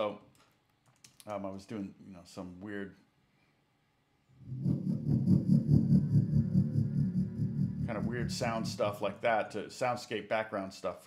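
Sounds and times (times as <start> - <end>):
low rumbling electronic throb: 4.4 - 9.3.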